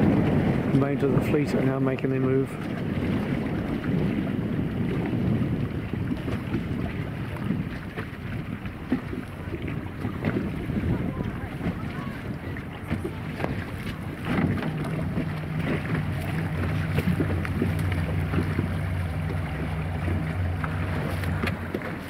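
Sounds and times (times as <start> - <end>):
sea: 0.0 - 22.0
wind buffeting microphone: 0.0 - 22.0.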